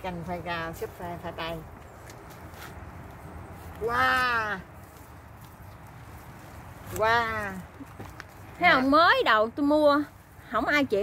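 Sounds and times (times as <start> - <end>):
outdoor background noise: 0.0 - 11.0
person exclaiming wow: 3.8 - 4.7.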